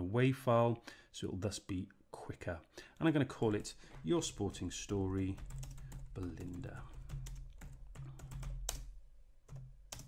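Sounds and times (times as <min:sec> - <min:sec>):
computer keyboard typing: 0:04.3 - 0:10.0.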